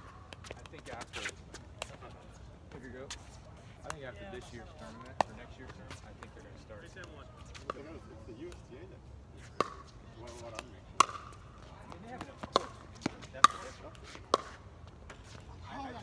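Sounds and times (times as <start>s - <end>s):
paddles hitting plastic ball: 10.5s - 14.6s.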